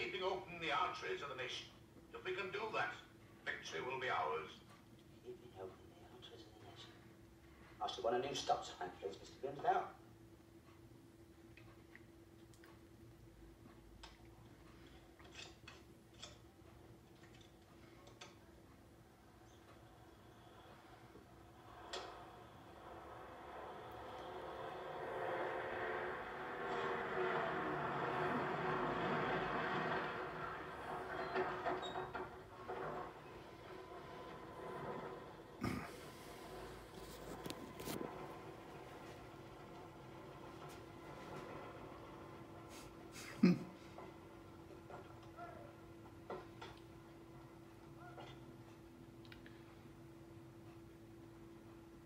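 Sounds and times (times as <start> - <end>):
faint steady hum: 0.0 - 52.0
vehicle engine approaching: 20.4 - 43.1.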